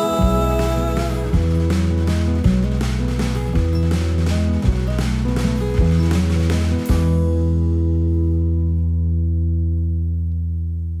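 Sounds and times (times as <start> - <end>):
acoustic guitars chord ringing: 0.0 - 10.0.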